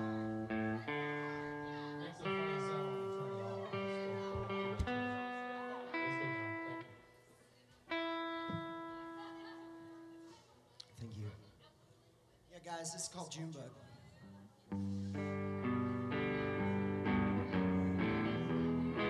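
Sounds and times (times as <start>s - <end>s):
acoustic guitar chords ringing: 0.0s - 7.2s.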